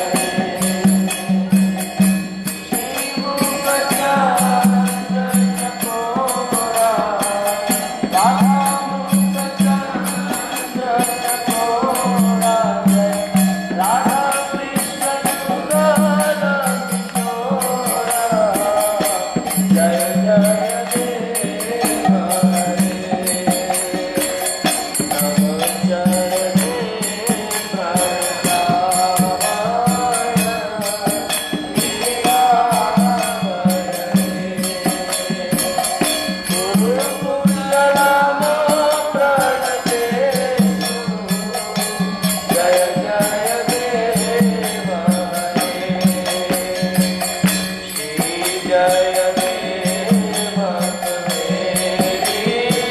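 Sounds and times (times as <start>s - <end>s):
hand cymbals striking: 0.0s - 52.9s.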